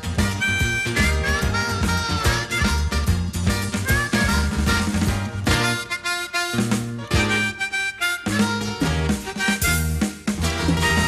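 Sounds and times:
band backing music: 0.0s - 11.0s
blues harmonica solo: 0.0s - 11.0s.

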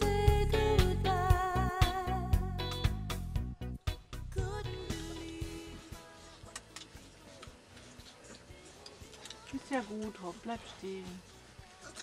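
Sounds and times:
background song: 0.0s - 12.0s.

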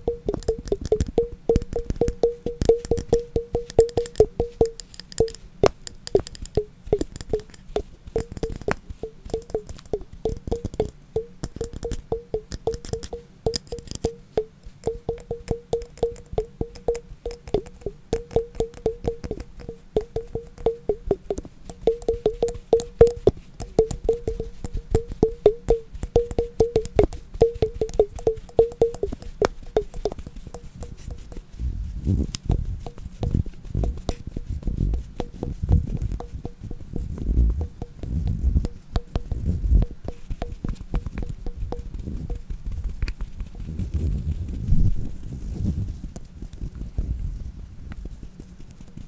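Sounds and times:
tapping on glass container: 0.0s - 31.5s, 34.9s - 42.5s
dull low taps: 0.0s - 45.3s.

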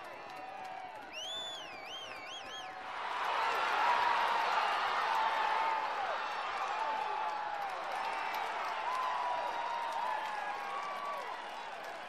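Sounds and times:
crowd noise: 2.6s - 12.0s.

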